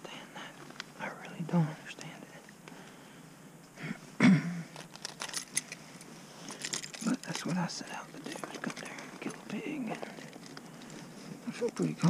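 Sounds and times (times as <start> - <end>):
light metallic clicks and clinks: 4.8 - 11.0.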